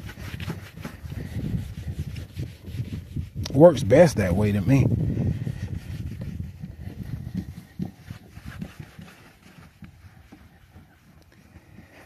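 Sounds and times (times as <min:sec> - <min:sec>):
towel rubbing car door: 0:00.0 - 0:12.0.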